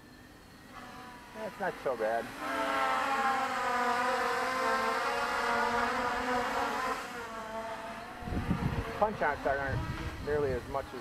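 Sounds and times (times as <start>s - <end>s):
quadcopter motors whining: 0.0s - 11.0s.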